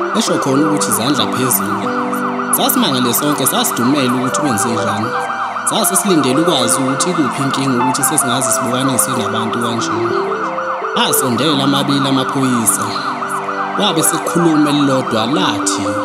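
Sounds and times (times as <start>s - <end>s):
electronic siren yelping: 0.0s - 16.0s.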